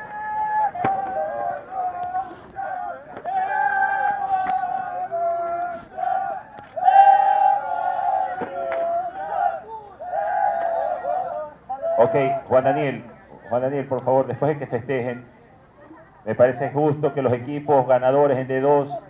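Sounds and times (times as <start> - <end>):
players shouting and cheering: 0.0 - 15.2.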